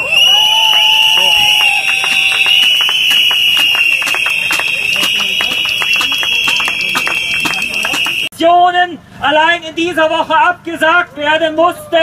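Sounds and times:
crowd blowing whistles: 0.0s - 8.3s
hand claps: 0.7s - 8.3s.

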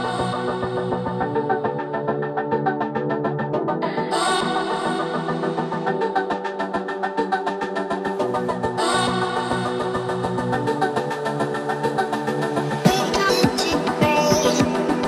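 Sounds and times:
music with steady beat and chords: 0.0s - 15.0s.

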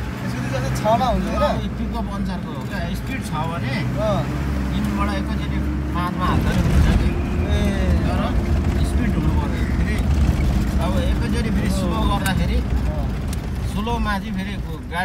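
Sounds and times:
car engine and tyre rumble: 0.0s - 15.0s
people talking: 0.2s - 15.0s.

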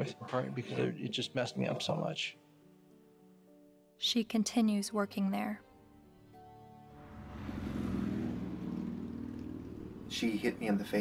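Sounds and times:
car engine and road hum: 7.0s - 11.0s.

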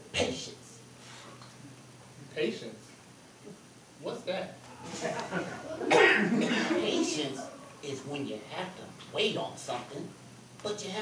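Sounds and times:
cough-like burst: 5.8s - 6.8s.

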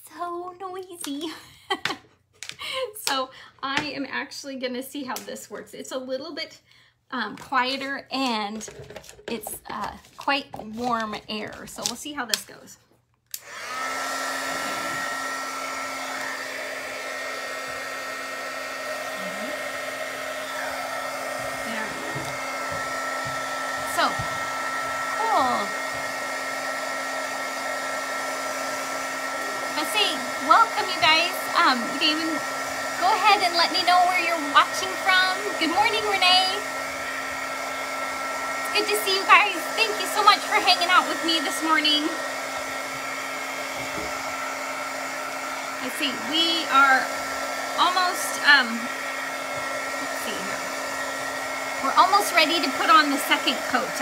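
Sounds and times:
heat gun blowing air: 13.3s - 54.0s.

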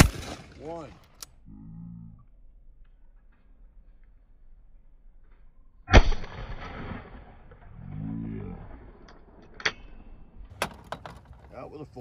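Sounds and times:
shotgun shot echoing: 0.0s - 0.9s, 5.9s - 7.3s.

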